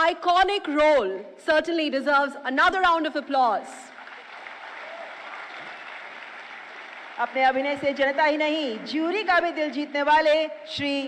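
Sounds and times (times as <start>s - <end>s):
audience applauding: 3.9s - 10.2s.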